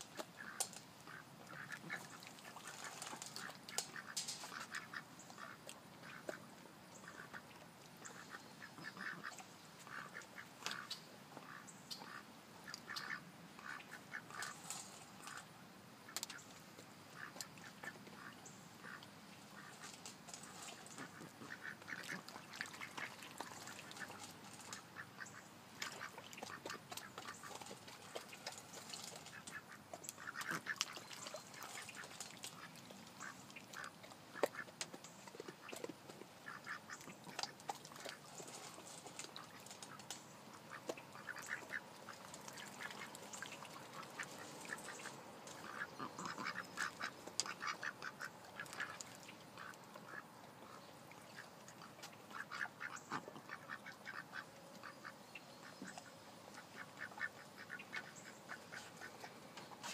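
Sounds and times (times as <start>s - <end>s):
ducks quacking: 0.1s - 15.5s, 17.1s - 34.7s, 36.4s - 59.9s.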